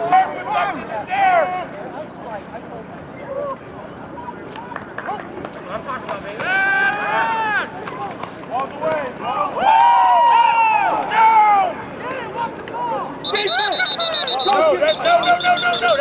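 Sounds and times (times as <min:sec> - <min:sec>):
referee whistle trilling: 0:13.2 - 0:16.0.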